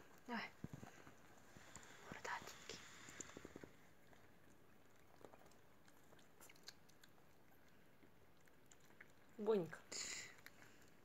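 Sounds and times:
puppy suckling from a syringe: 2.8 - 11.0.

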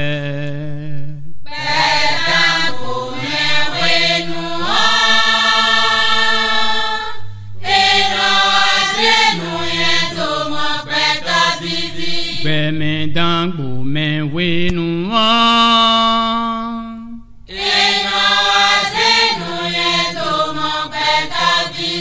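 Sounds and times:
voices chanting long notes: 1.5 - 12.5, 17.5 - 22.0.

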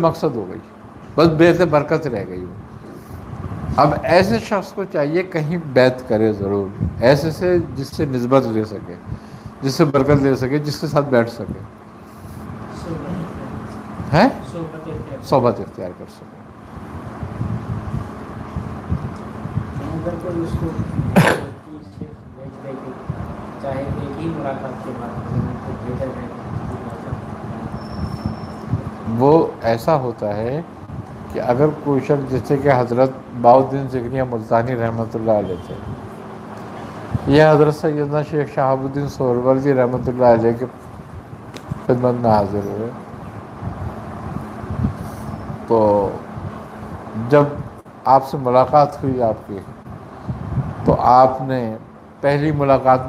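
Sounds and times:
faint steady hum: 0.0 - 53.0
low rumbling background noise: 0.0 - 53.0
man clearing his throat: 21.1 - 21.7.

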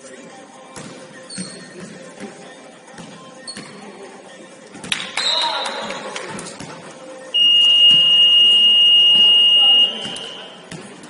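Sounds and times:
high-pitched scoreboard buzzer: 7.4 - 10.6.

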